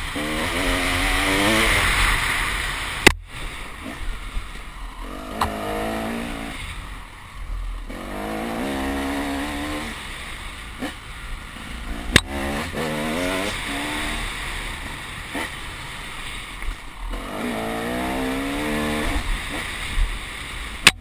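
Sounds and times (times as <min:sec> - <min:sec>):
motorcycle engine revving: 0:00.0 - 0:07.2, 0:07.8 - 0:21.0.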